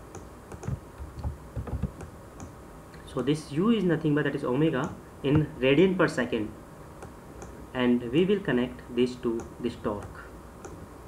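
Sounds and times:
computer keyboard typing: 0:00.1 - 0:02.5.

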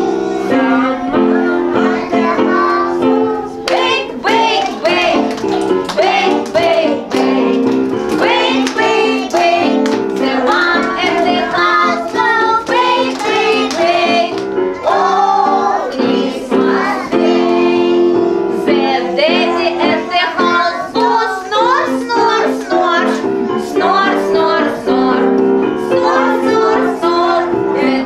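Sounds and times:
children and woman singing: 0:00.0 - 0:28.0
hand claps: 0:03.7 - 0:14.5.

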